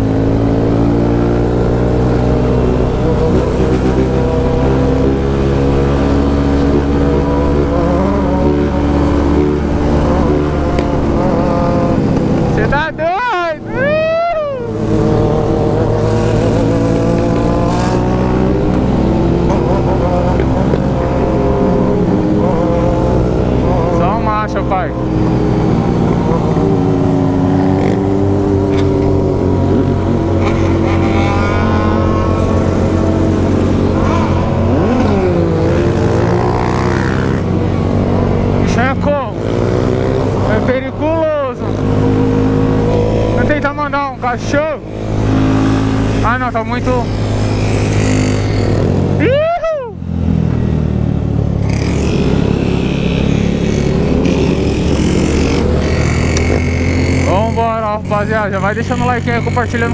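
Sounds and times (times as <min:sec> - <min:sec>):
motorcycle engine running: 0:00.0 - 0:49.4, 0:50.0 - 0:59.9.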